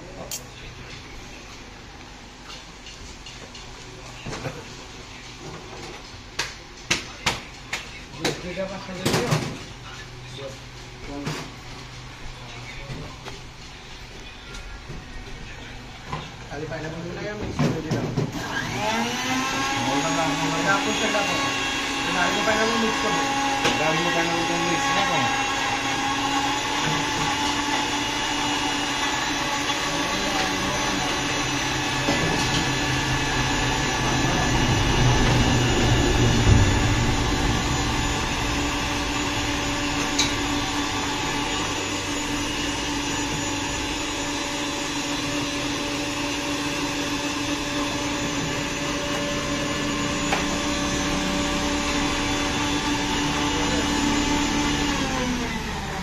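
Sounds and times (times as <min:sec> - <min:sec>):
electric blender running: 0:18.2 - 0:56.0.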